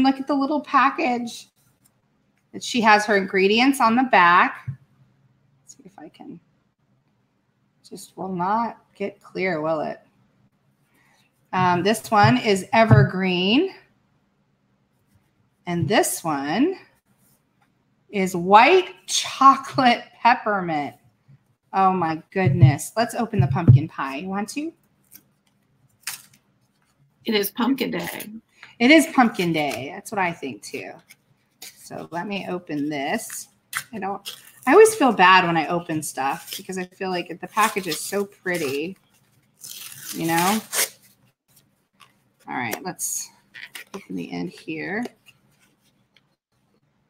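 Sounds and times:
soap package rustling: 33.7 - 34.8, 36.3 - 36.7, 37.5 - 42.4.

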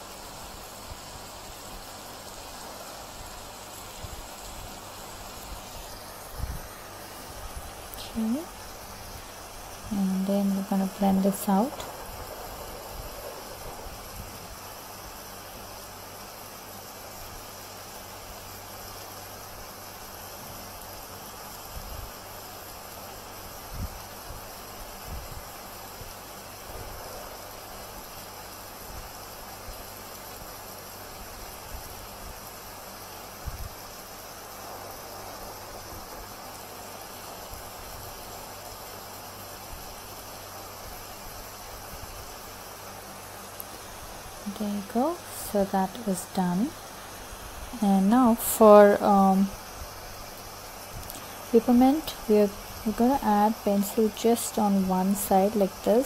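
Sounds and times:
background hiss: 0.0 - 56.0.

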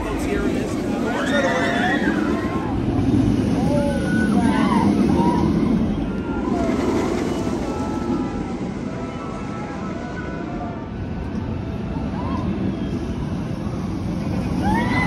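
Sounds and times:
roller coaster train rumbling: 0.0 - 15.0
riders screaming: 1.0 - 2.8, 3.5 - 10.5, 14.5 - 15.0.

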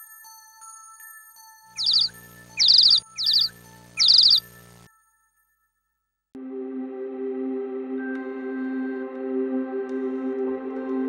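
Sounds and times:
bird chirping tweets: 1.8 - 4.5
low hum: 1.8 - 4.8.

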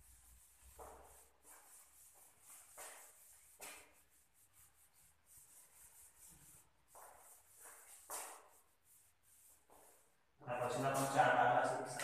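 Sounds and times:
duster wiping blackboard: 0.0 - 12.0.

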